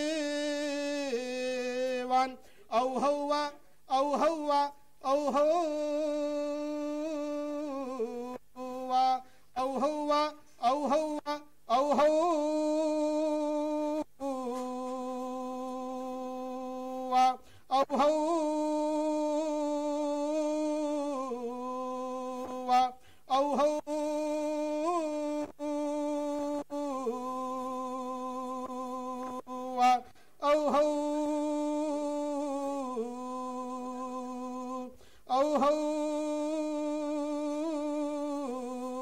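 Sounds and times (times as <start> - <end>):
breath: 2.4 - 2.7, 9.2 - 9.6, 17.4 - 17.7, 23.0 - 23.3, 30.0 - 30.4, 34.9 - 35.3.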